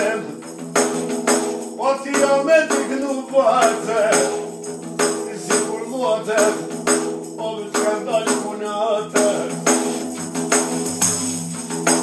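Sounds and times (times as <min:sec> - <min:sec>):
person singing ornamented lines: 0:00.0 - 0:00.7, 0:01.7 - 0:09.8
jingling frame drum: 0:00.0 - 0:12.0.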